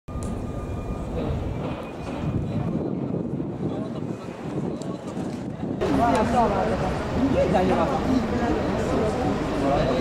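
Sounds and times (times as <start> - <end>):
traffic rumble: 0.1 - 10.0
murmur of crowd voices: 0.2 - 10.0.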